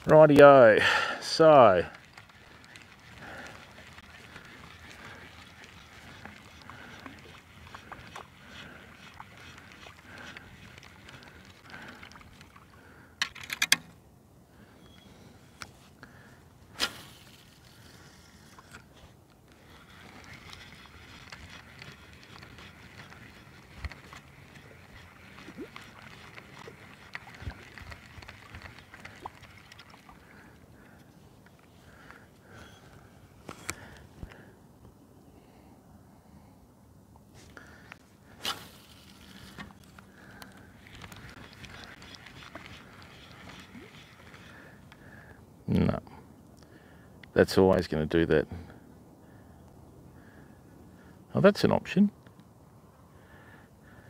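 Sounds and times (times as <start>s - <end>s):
water lapping and splashing: 0.0s - 13.2s, 16.2s - 33.1s, 37.6s - 45.4s.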